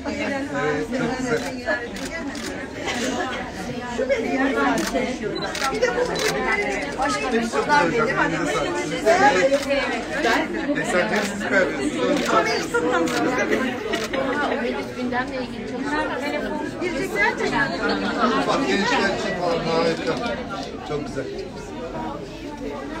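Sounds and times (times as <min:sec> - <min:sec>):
overlapping conversational chatter: 0:00.0 - 0:23.0.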